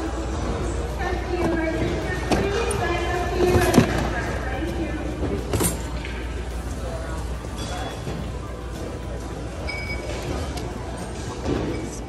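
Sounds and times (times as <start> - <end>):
shoppers chattering: 0.0 - 12.0.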